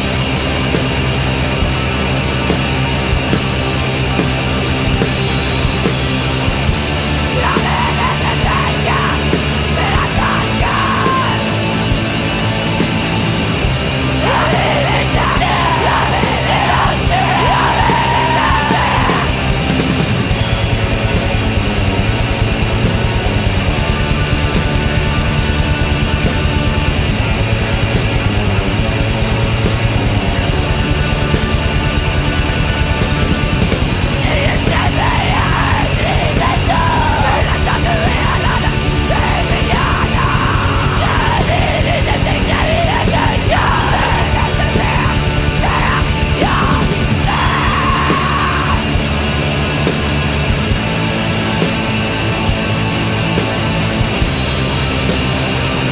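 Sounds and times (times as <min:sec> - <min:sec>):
punk band playing loudly: 0:00.0 - 0:55.9
harsh yelled female vocal: 0:07.4 - 0:11.5, 0:14.2 - 0:19.4, 0:34.2 - 0:48.9.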